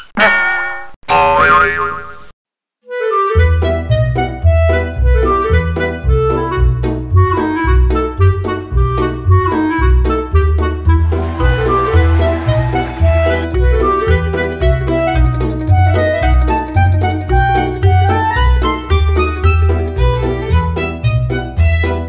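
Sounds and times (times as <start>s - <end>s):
bouncy background music: 3.2s - 22.0s.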